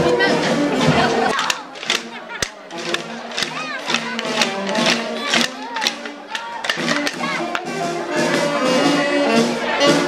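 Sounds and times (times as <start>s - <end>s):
crowd voices: 0.0s - 10.0s
street band with saxophone: 0.0s - 10.0s.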